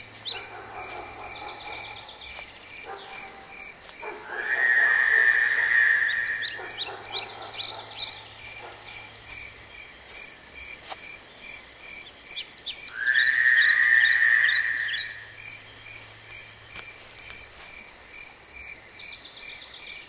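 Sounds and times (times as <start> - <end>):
bird chirps: 0.0 - 9.2, 12.0 - 15.9
pulsing insect or frog call: 0.0 - 9.9, 10.6 - 18.8
louder animal call: 4.0 - 8.2, 12.9 - 15.3.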